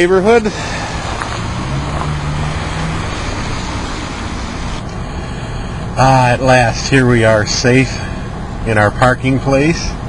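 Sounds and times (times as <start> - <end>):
low engine hum: 0.0 - 10.0
street traffic: 0.0 - 10.0.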